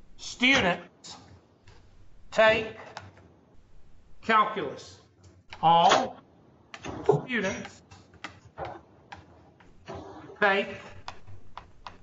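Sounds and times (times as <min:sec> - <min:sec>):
pen clicking on whiteboard: 0:06.7 - 0:09.8, 0:10.9 - 0:12.0.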